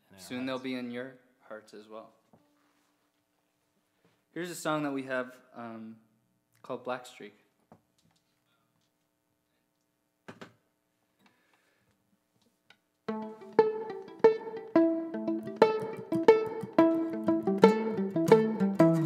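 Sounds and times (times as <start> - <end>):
acoustic guitar: 13.1 - 19.0
fiddle: 13.1 - 19.0.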